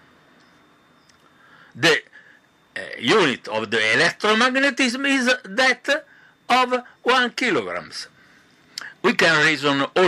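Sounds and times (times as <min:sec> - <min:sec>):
man speaking: 0:01.8 - 0:02.1, 0:02.8 - 0:08.1, 0:08.8 - 0:10.0.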